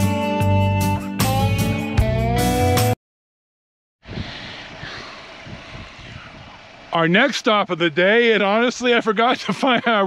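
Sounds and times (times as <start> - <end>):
wind rumbling on microphone: 4.0 - 6.9.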